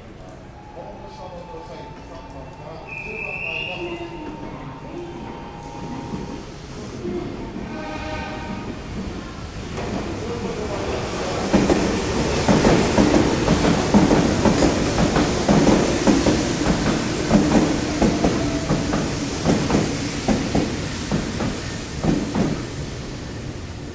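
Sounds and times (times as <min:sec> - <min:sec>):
train wheels clattering over rails: 0:06.1 - 0:23.3.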